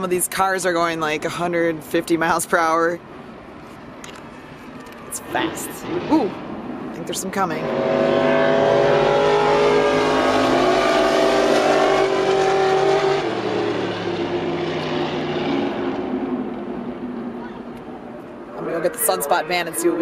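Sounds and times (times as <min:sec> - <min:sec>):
racing car engines: 0:03.0 - 0:20.0.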